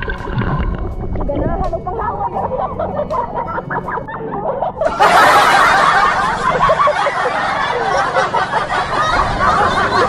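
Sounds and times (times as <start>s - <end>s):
swimmers laughing and chattering: 2.0s - 10.0s.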